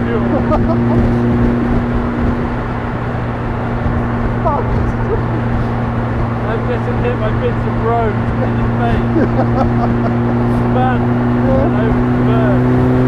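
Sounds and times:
car engine cruising drone: 0.0s - 13.0s
road noise: 0.0s - 13.0s
wind noise: 0.0s - 13.0s.

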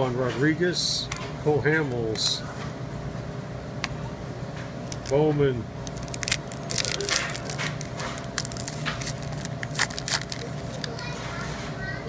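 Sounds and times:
foil wrapper crinkling and tearing: 5.8s - 11.2s.

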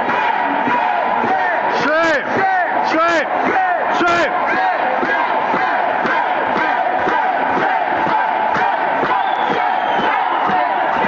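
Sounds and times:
crowd shouting and chanting: 0.0s - 11.0s.

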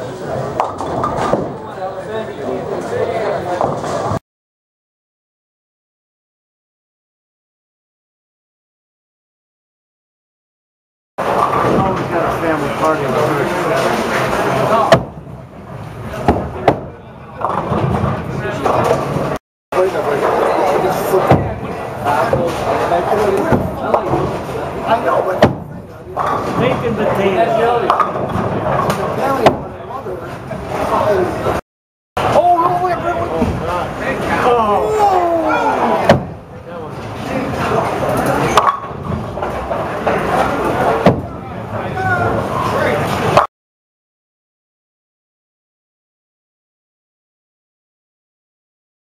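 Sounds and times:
bowling alley background din: 0.0s - 4.2s, 11.2s - 31.6s, 32.2s - 43.5s
bowling ball hitting pins: 13.7s - 15.4s, 20.2s - 26.9s, 36.0s - 36.4s, 38.5s - 41.4s.

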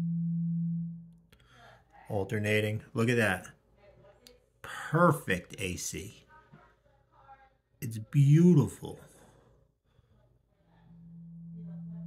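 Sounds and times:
coil humming low tone: 0.0s - 1.2s, 10.8s - 12.0s.

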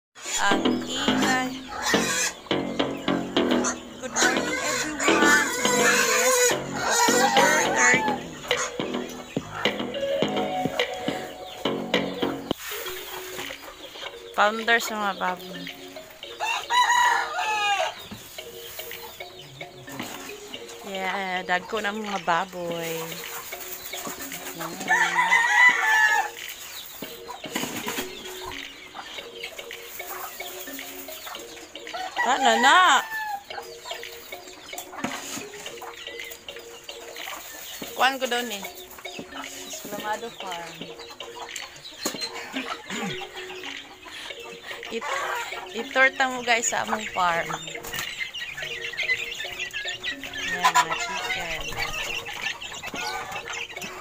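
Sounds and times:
chickens clucking: 0.2s - 54.0s.

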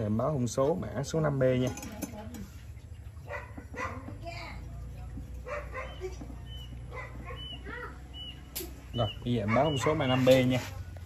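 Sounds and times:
dog barking: 3.2s - 4.1s, 5.4s - 6.2s, 6.9s - 7.8s, 9.3s - 10.5s.

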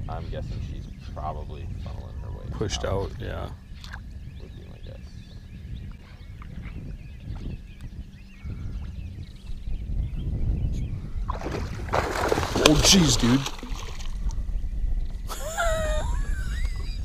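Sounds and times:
low wind rumble: 0.0s - 17.0s
fish thrashing and splashing: 11.3s - 14.3s.

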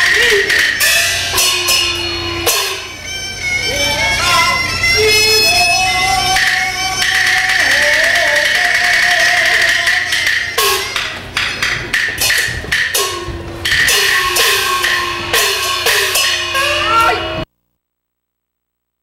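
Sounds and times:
drum strokes: 0.0s - 17.5s.

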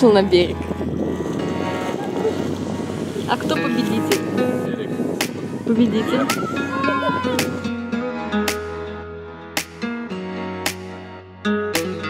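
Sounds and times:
wind on microphone: 0.0s - 8.0s.

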